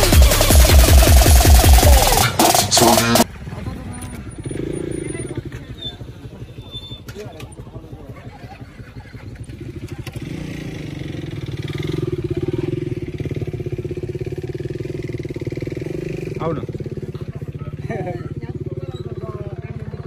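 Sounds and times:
motorcycle engine idling: 0:00.0 - 0:20.0.

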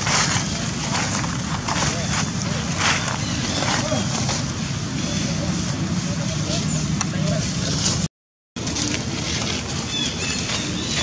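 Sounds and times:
distant indistinct voices: 0:00.2 - 0:08.0.

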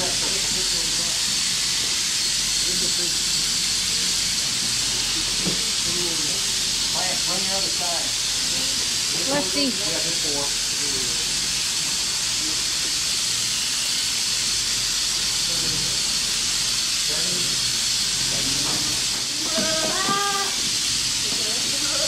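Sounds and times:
steady high hiss: 0:00.0 - 0:22.0.

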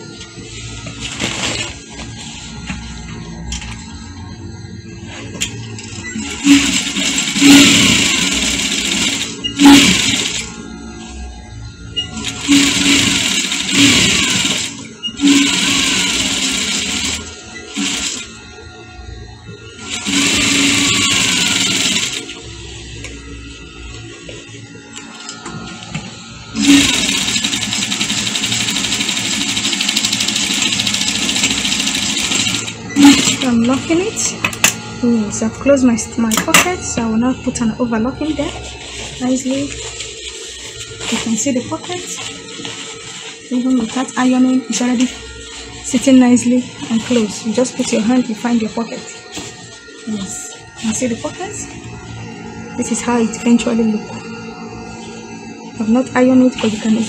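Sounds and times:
background music: 0:00.0 - 0:57.0
sewing machine stitching: 0:06.2 - 0:10.5, 0:12.2 - 0:18.3, 0:19.8 - 0:22.3, 0:26.6 - 0:33.6.

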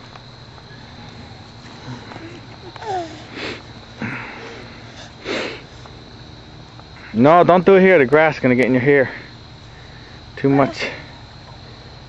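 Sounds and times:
short breath close to microphone: 0:01.7 - 0:06.0.

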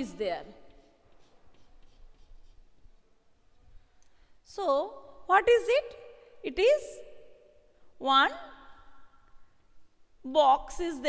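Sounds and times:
chalk scratching on blackboard: 0:00.4 - 0:03.0.

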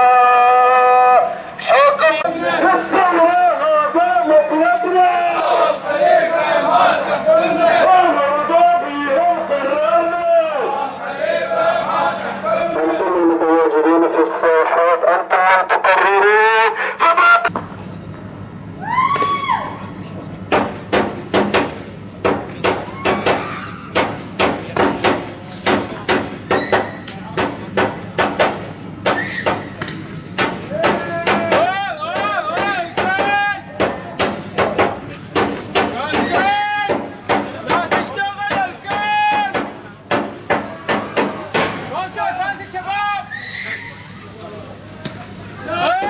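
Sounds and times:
crowd chanting: 0:00.0 - 0:03.3, 0:04.7 - 0:13.2.

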